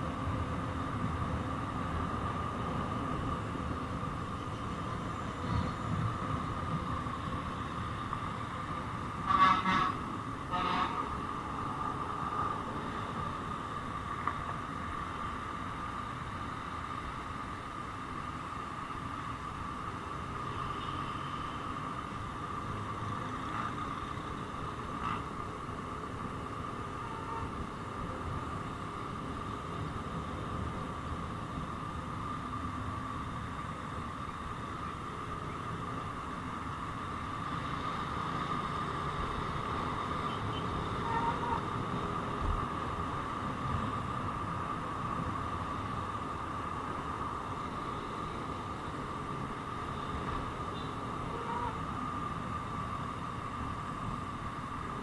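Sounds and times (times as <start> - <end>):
constant high hum: 0.0 - 55.0
motorcycle riding in traffic: 0.0 - 55.0.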